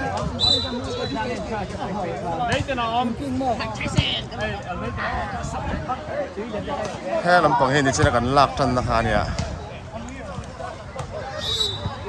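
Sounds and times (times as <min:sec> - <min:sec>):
voices of players: 0:00.0 - 0:12.0.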